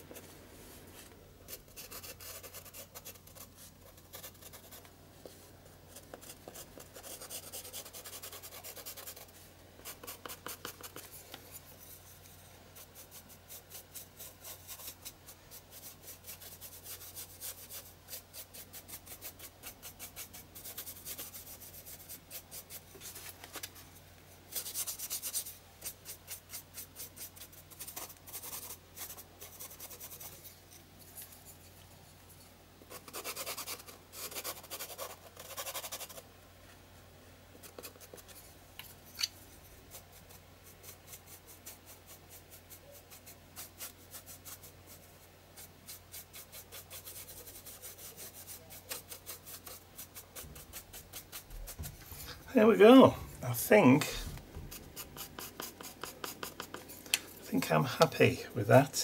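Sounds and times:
charcoal pencil scratching on paper: 0:00.0 - 0:23.8, 0:24.5 - 0:31.8, 0:32.9 - 0:36.3, 0:37.6 - 0:38.5, 0:39.5 - 0:59.0
paintbrush scrubbing paper: 0:00.0 - 0:31.6, 0:32.9 - 0:36.3, 0:39.5 - 0:59.0.

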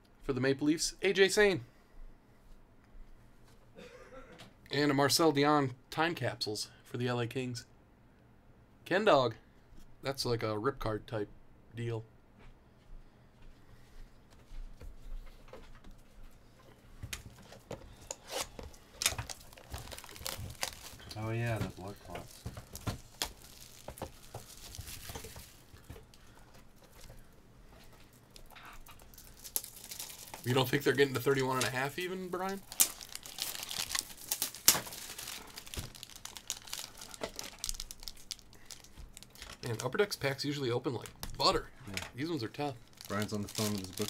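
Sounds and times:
wrapper crinkling: 0:17.4 - 0:27.3, 0:27.9 - 0:41.5, 0:42.2 - 0:44.0
wrapper tearing: 0:18.0 - 0:25.9, 0:28.3 - 0:40.0, 0:42.2 - 0:44.0.

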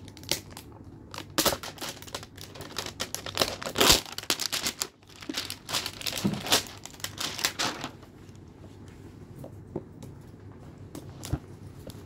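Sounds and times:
packaging crinkling and tearing: 0:00.0 - 0:08.0.

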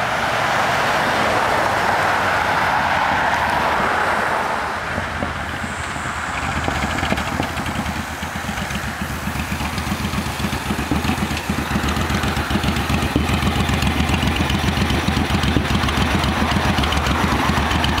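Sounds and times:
motorcycle engine running: 0:05.0 - 0:18.0.

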